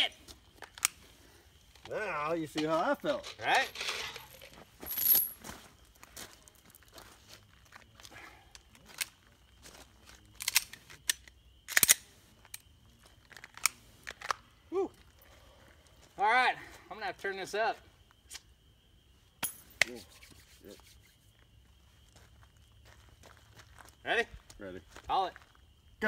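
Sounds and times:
pistol magazines clicking and clacking: 0:10.4 - 0:12.0.

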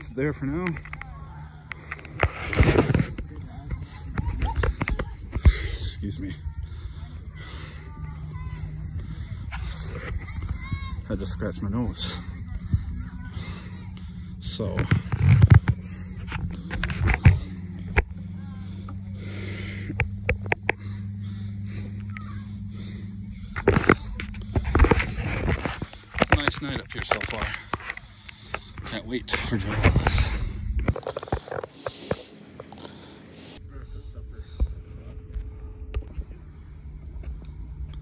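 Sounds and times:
phone handling rustle and rumble: 0:00.0 - 0:13.3, 0:14.3 - 0:33.6
low mechanical hum: 0:00.0 - 0:38.0.

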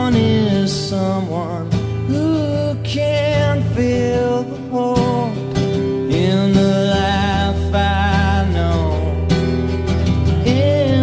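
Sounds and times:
man singing: 0:00.0 - 0:09.4, 0:10.3 - 0:11.0
strummed acoustic guitar: 0:00.0 - 0:11.0.

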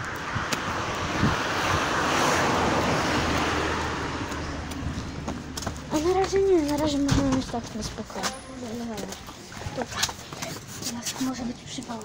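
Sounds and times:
car passing by: 0:00.0 - 0:05.9.

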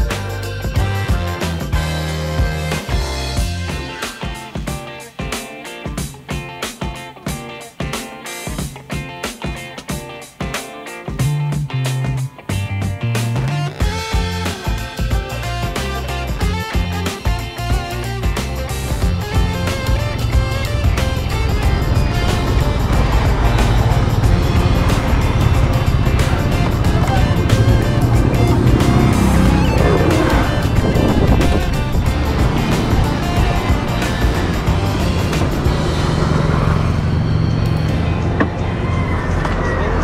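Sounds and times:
guitar music: 0:00.0 - 0:40.0
scooter engine riding: 0:13.7 - 0:40.0
passing motorcycle engine: 0:18.6 - 0:40.0
wind on microphone: 0:19.0 - 0:36.0.

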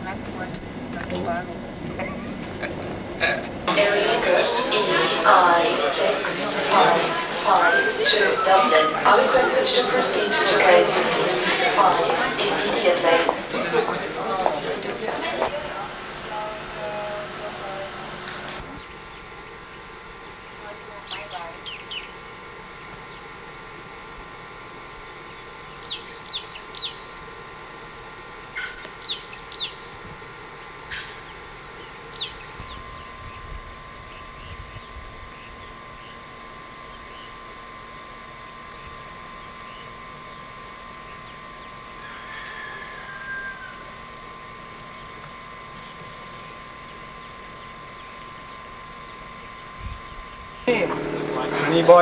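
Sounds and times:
birds chirping: 0:18.0 - 0:22.4, 0:24.2 - 0:27.2, 0:29.0 - 0:29.9, 0:30.6 - 0:36.2
low hum: 0:44.9 - 0:52.0.

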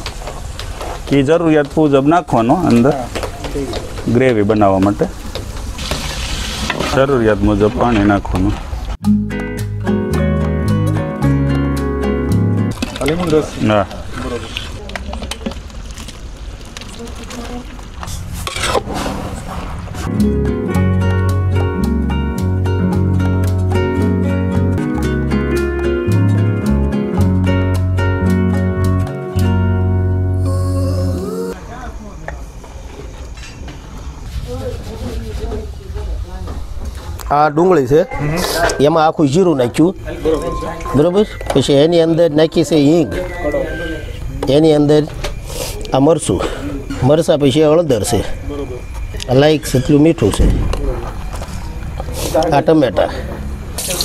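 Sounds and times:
water poured into hot oil sizzling: 0:05.5 - 0:06.8
metal ladle scraping in a pot: 0:18.1 - 0:19.6
person talking: 0:30.4 - 0:31.7.

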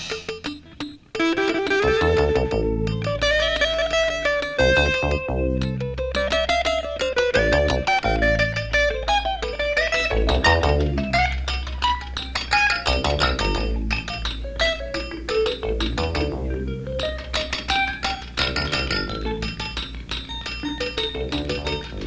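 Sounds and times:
plucked guitar notes: 0:00.0 - 0:22.0
bass line: 0:01.8 - 0:06.4, 0:07.4 - 0:09.0, 0:10.1 - 0:11.6, 0:12.8 - 0:14.5, 0:15.6 - 0:17.1, 0:18.4 - 0:19.6, 0:21.2 - 0:22.0.

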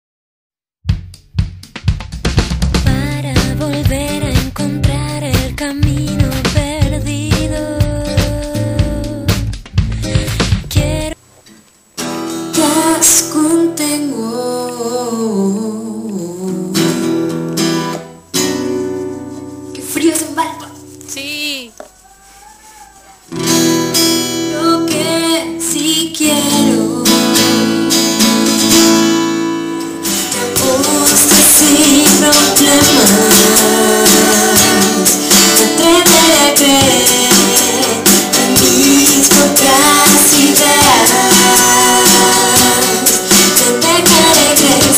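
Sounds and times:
acoustic guitar playing: 0:00.9 - 0:21.7, 0:22.4 - 0:44.9
person singing: 0:02.8 - 0:11.2, 0:12.4 - 0:18.0, 0:24.4 - 0:29.4, 0:30.1 - 0:44.9.

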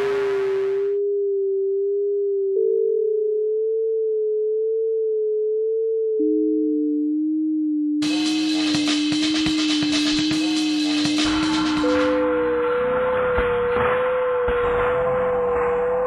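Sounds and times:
pure sine tone: 0:00.0 - 0:16.0
dense sampled electronic texture: 0:08.0 - 0:16.0.

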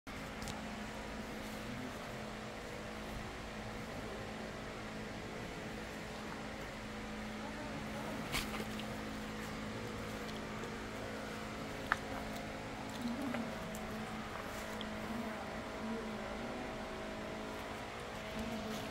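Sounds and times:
steady mechanical hum: 0:00.1 - 0:18.9.

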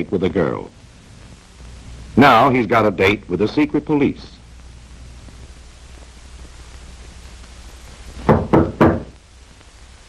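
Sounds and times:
knocks on wooden door: 0:08.2 - 0:09.2.

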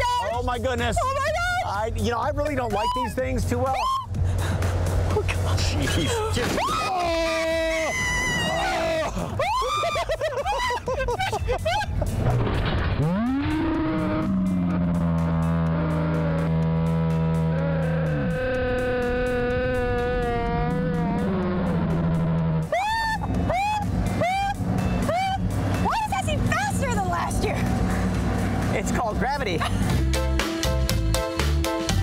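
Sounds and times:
slowed-down screams: 0:06.6 - 0:10.0, 0:13.0 - 0:25.4.

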